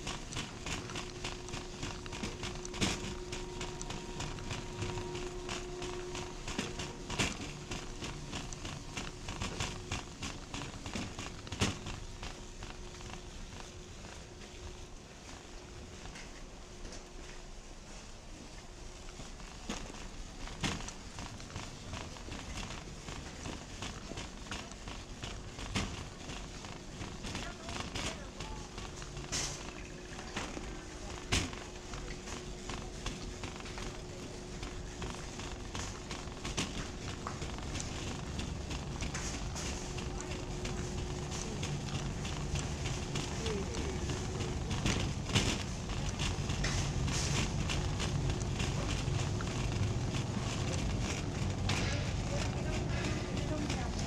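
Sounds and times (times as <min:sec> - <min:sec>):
faint steady hum: 0:00.0 - 0:54.0
shopping cart rattling: 0:00.0 - 0:54.0
indistinct voices: 0:39.0 - 0:46.8, 0:47.9 - 0:54.0.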